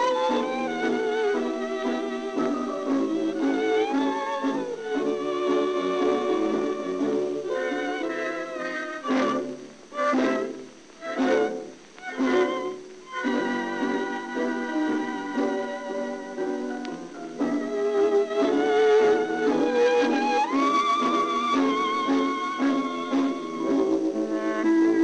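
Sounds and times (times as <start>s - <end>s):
tango band with violin melody: 0.0s - 25.0s.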